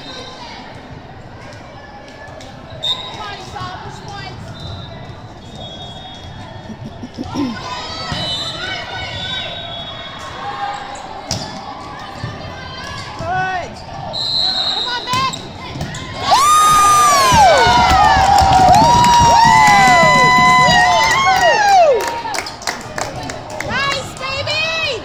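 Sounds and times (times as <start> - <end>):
background chatter: 0.0 - 16.3
volleyball hits: 15.1 - 21.1
girls shouting and cheering: 16.2 - 22.2.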